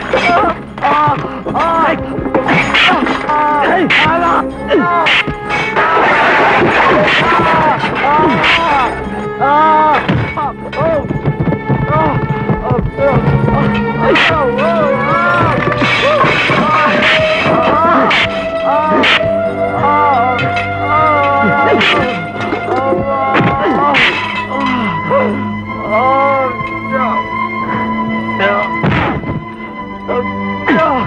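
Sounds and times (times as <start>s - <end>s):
people shouting: 0.0s - 11.1s, 11.9s - 27.3s
background music: 0.0s - 31.0s
dramatic film score drone: 0.0s - 31.0s
knocks and thuds: 10.0s - 18.6s, 28.8s - 29.5s.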